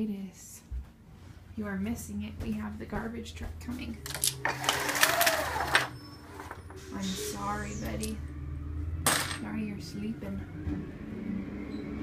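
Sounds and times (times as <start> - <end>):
truck engine humming: 1.8 - 12.0.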